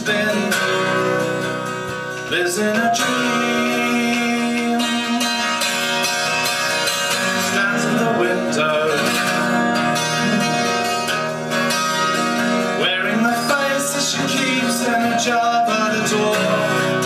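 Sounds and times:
man singing: 0:00.0 - 0:11.3, 0:12.6 - 0:17.0
acoustic guitar strumming: 0:00.0 - 0:17.0.

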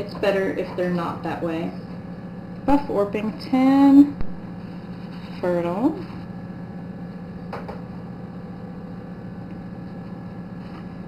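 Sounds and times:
incubator fan motor humming: 0:00.0 - 0:11.0.

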